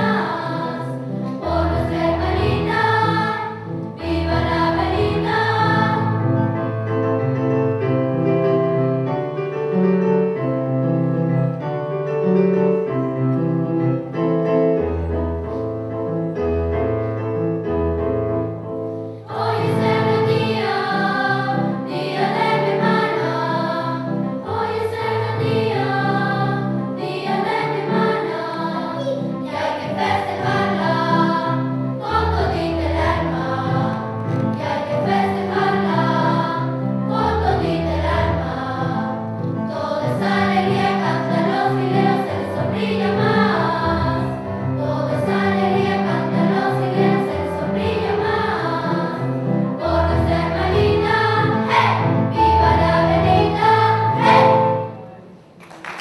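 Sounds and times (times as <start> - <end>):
children's choir singing: 0.0 - 6.7, 19.2 - 55.4
piano accompaniment: 0.0 - 56.0.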